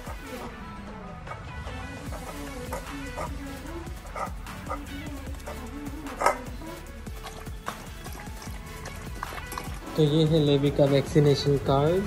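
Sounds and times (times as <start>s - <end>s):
background music: 0.0s - 12.0s
dog chewing and lapping food: 2.0s - 11.0s.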